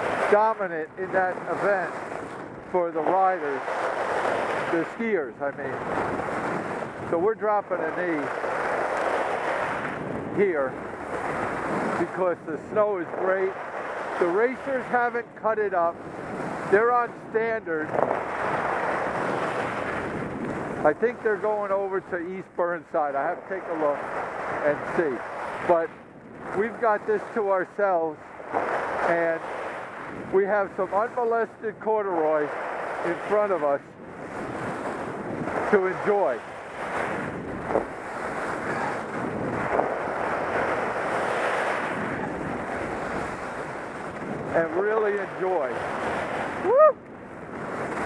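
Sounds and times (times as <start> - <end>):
skis sliding on snow: 0.0 - 46.9, 47.6 - 48.0
wind on microphone: 0.0 - 48.0.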